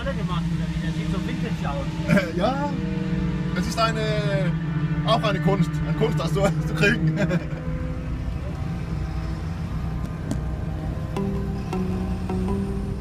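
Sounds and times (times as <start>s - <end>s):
car cabin rumble: 6.4s - 13.0s
plucked string music: 10.0s - 13.0s.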